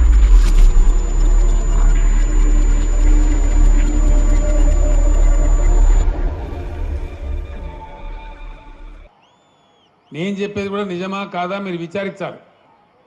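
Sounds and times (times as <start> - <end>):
deep bass rumble: 0.0 - 9.1
thin high tone: 0.0 - 9.1.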